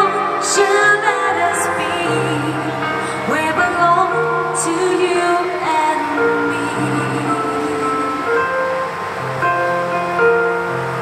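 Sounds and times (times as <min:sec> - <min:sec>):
electronic keyboard chords: 0:00.0 - 0:11.0.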